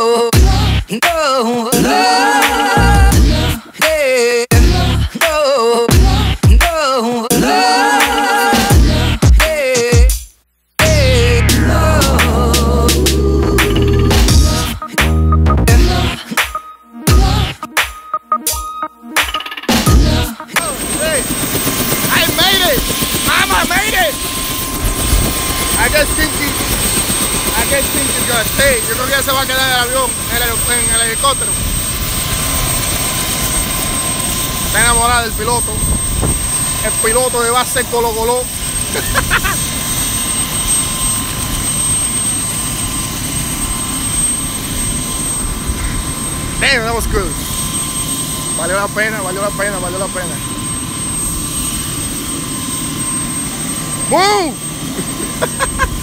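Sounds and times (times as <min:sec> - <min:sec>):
music: 0:00.0 - 0:23.3
helicopter rotor and engine: 0:19.3 - 0:56.0.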